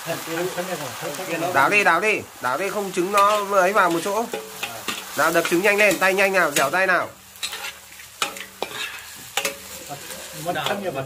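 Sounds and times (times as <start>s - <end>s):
frying sizzle: 0.0s - 11.0s
metal spatula scraping wok: 2.6s - 11.0s.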